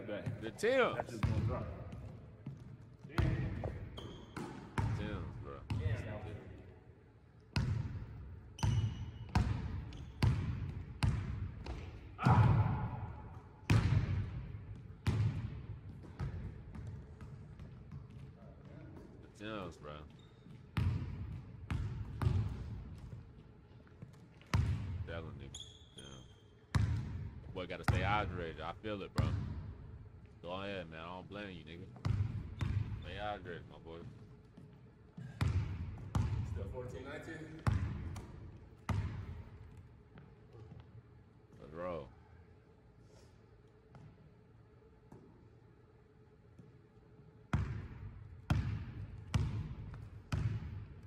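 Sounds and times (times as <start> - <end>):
basketball bouncing on hardwood: 8.6 - 12.7, 20.5 - 23.2, 34.1 - 36.5, 37.6 - 39.8, 47.5 - 50.8.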